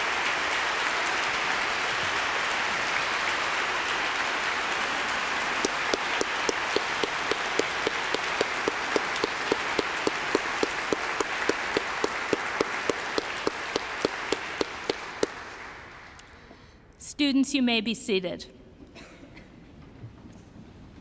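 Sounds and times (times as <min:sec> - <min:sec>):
audience applauding: 0:00.0 - 0:16.5
close hands clapping steadily: 0:00.0 - 0:16.5.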